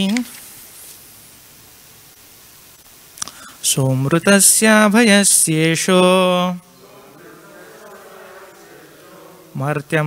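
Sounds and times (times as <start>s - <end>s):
group chanting in unison: 6.7s - 9.9s.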